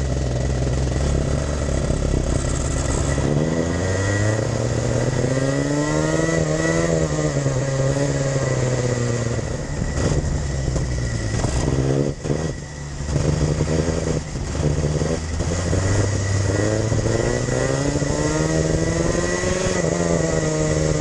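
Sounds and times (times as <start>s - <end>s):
kart engine revving: 0.0s - 21.0s.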